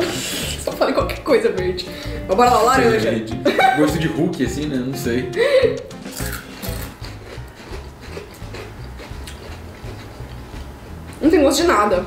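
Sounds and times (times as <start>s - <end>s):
quiet background music: 0.0s - 12.0s
crunchy snack being chewed: 6.0s - 11.2s.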